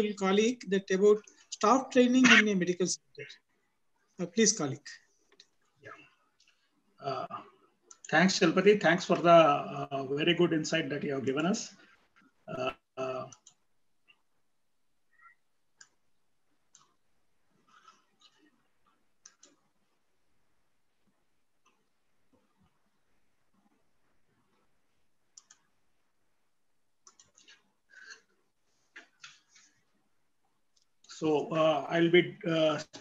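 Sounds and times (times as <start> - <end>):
man saying uh: 7.0 - 7.4
computer mouse clicks: 13.2 - 14.2, 15.2 - 16.0, 16.7 - 17.0, 17.7 - 19.8, 25.3 - 25.8, 27.0 - 28.3
faint computer mouse clicks: 27.0 - 28.2.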